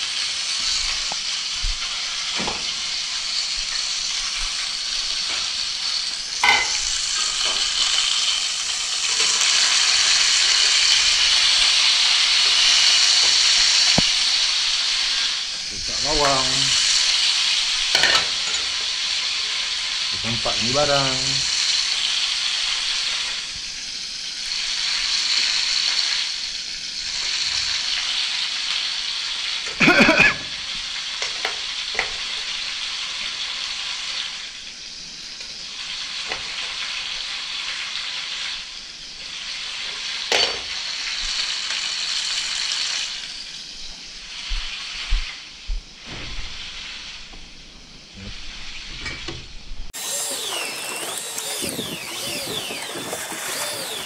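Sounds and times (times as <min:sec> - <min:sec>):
food sizzling in oil: 0:00.0 - 0:49.1, 0:49.9 - 0:54.0.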